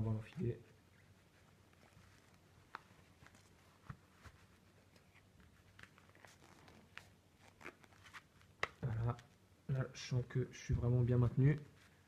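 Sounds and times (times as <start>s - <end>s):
glove rustling: 0.0s - 9.4s, 10.8s - 12.0s.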